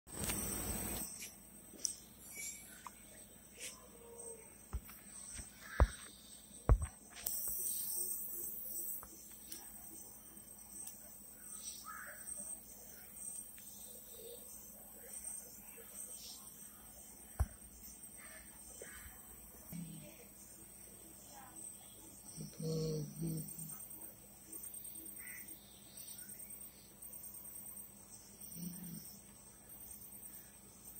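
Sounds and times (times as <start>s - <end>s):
high-pitched insect drone: 0.2s - 4.6s, 5.7s - 10.8s.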